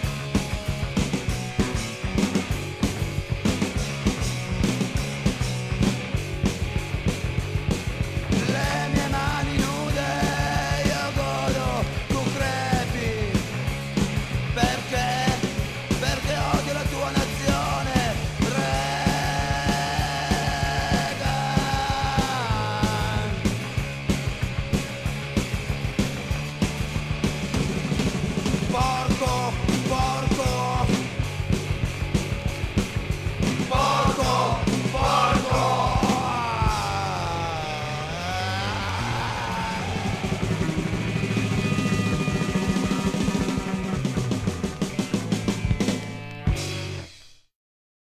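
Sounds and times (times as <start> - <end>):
drums beating: 0.0 - 46.9
bass line: 0.0 - 47.1
punk rock band playing: 0.0 - 47.1.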